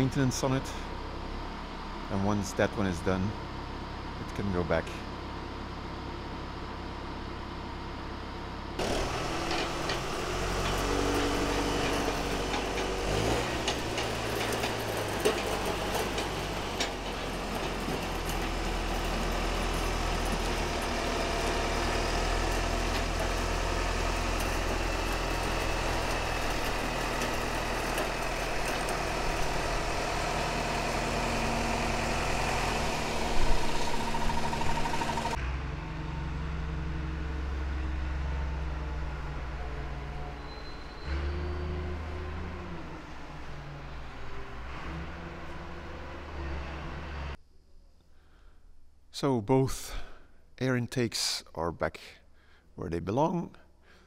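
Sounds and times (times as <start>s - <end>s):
vehicle engine running: 0.0s - 40.5s.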